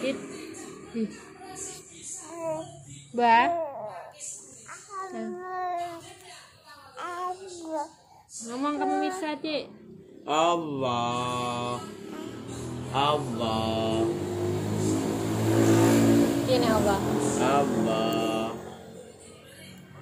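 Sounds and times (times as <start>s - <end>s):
vehicle passing by: 0.0s - 4.1s, 9.7s - 20.0s.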